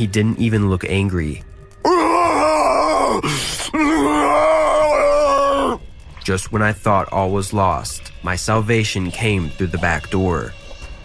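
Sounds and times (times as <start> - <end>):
man crying out: 1.9 - 5.8.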